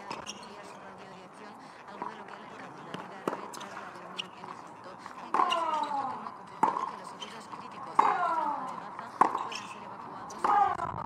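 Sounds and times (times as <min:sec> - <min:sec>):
spectators talking: 0:00.0 - 0:11.0
tennis ball bouncing on hard court: 0:00.0 - 0:11.0.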